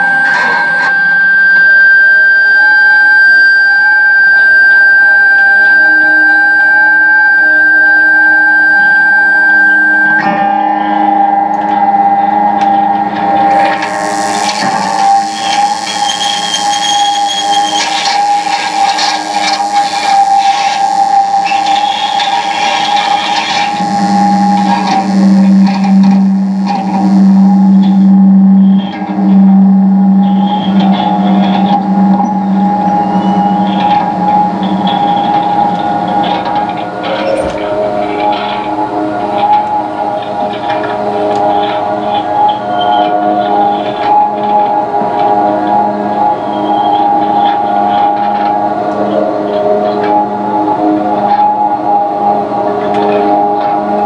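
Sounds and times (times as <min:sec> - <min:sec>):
high held tone: 0:00.0 - 0:48.7
guitar drones and tones: 0:00.0 - 0:54.0
pulsing low hum: 0:11.8 - 0:42.4.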